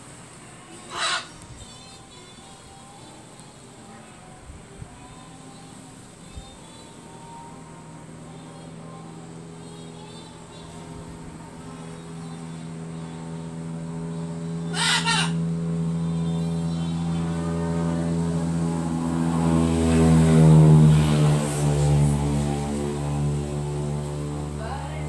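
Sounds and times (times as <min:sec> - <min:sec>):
propeller aircraft drone: 0:07.0 - 0:25.0.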